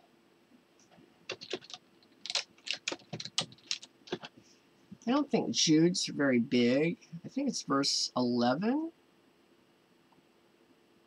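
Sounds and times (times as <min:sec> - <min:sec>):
keyboard key clicks: 0:01.3 - 0:04.3.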